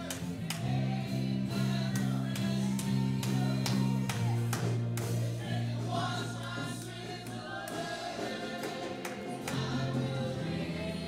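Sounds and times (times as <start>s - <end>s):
band with guitars playing: 0.0s - 11.0s
voices singing together: 0.0s - 11.0s.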